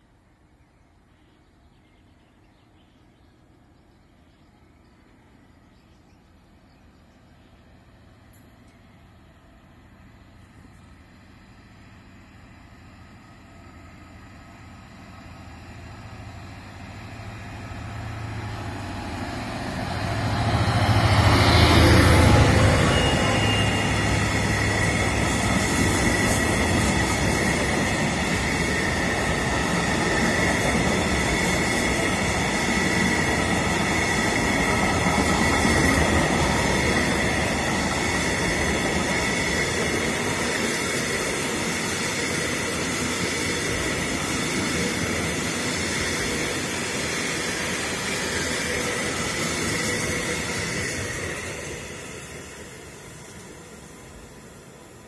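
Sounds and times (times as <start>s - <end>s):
freight train rumbling past: 4.6s - 55.0s.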